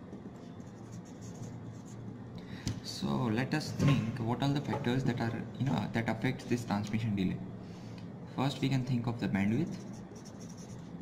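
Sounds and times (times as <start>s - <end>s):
marker pen writing on board: 0.0s - 2.0s, 9.7s - 11.0s
faint low hum: 0.0s - 11.0s.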